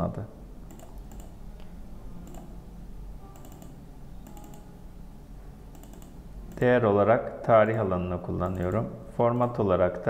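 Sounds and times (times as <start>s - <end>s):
low steady hum: 0.0s - 10.0s
computer keyboard typing: 0.7s - 1.4s, 2.2s - 2.5s, 3.4s - 4.7s, 5.7s - 6.7s.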